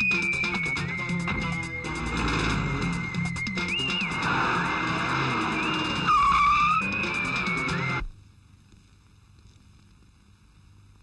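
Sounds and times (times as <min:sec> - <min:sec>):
background music: 0:00.0 - 0:08.1
tyre screech: 0:00.1 - 0:08.0
car engine and road noise: 0:01.2 - 0:08.1.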